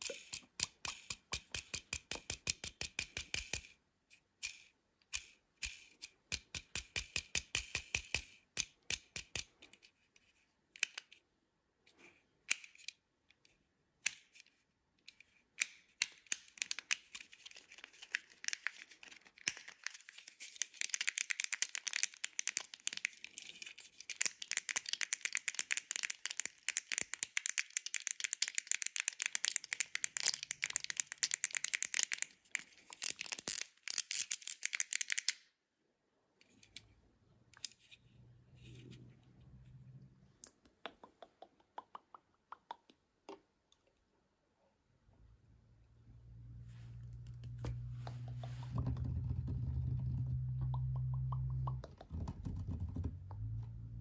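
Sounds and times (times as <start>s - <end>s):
plastic fidget pad clicking: 0.0s - 3.8s, 4.4s - 9.5s, 14.0s - 35.5s.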